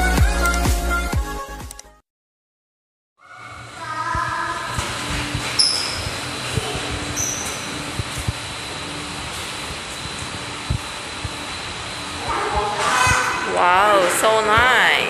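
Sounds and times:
rushing indoor background noise: 0:03.3 - 0:15.0.

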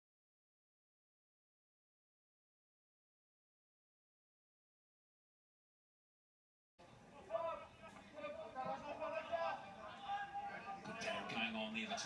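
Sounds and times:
man commentating through tv speaker: 0:07.1 - 0:12.0.

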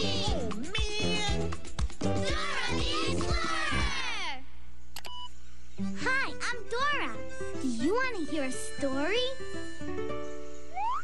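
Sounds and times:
upbeat cartoon theme song: 0:00.0 - 0:04.4, 0:05.8 - 0:11.0
swooping pitch glide: 0:10.7 - 0:11.0.

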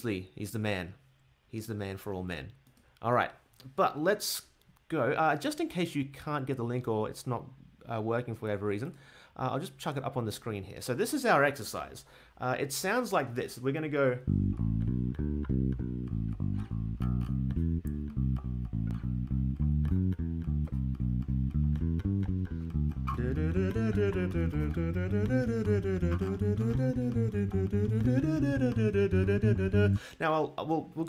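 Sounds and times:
bass guitar arpeggios: 0:14.2 - 0:30.1
person singing: 0:22.6 - 0:30.2.

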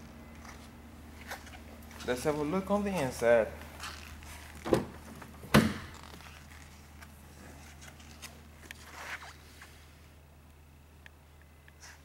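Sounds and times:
low steady hum: 0:00.0 - 0:11.8.

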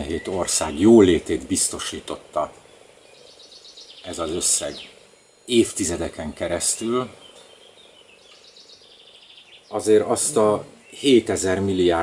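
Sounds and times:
small wildlife chirping: 0:00.0 - 0:12.0.

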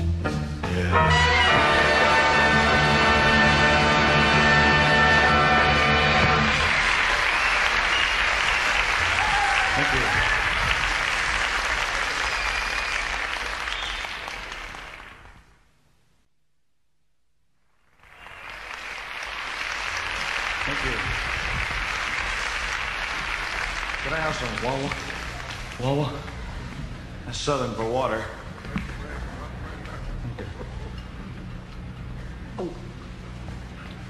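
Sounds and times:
live band chord: 0:00.0 - 0:06.7
audience applauding: 0:01.5 - 0:15.5, 0:17.8 - 0:26.7.

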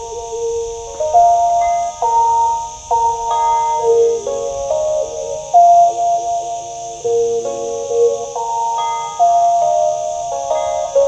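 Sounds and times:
stick zither slow melody: 0:00.0 - 0:11.0.

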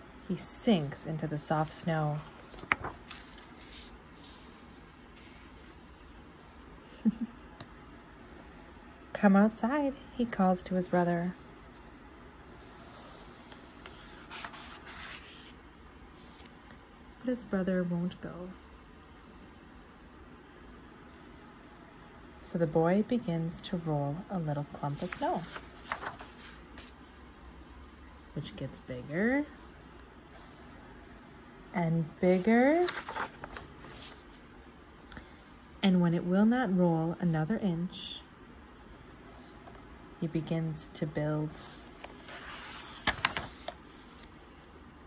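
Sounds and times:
page turning: 0:02.1 - 0:06.0, 0:12.8 - 0:15.6, 0:24.9 - 0:27.1, 0:32.4 - 0:34.4, 0:41.6 - 0:44.4
paper page turning swish: 0:25.0 - 0:26.9.

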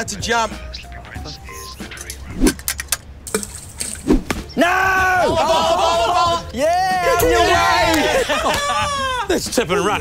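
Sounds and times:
man shouting: 0:04.6 - 0:09.3.

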